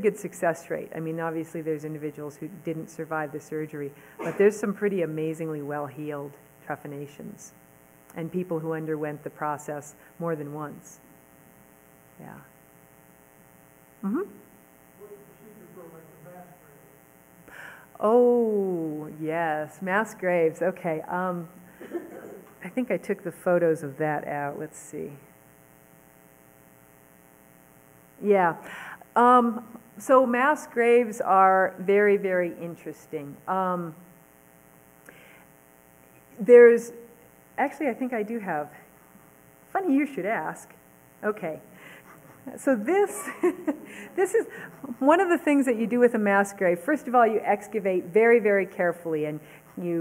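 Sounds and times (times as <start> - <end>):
electrical mains hum: 0.0 - 50.0.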